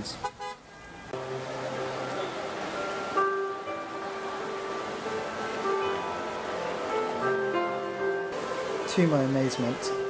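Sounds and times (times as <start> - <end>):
street traffic: 0.0 - 10.0
car horn toot: 0.1 - 1.2.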